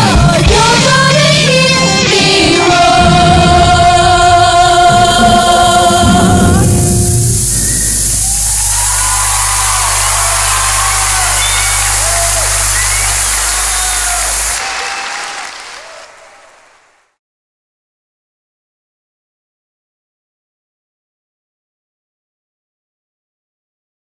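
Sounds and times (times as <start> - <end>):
girls' choir and band chord: 0.0 - 7.0
audience applause and cheers: 7.0 - 17.2.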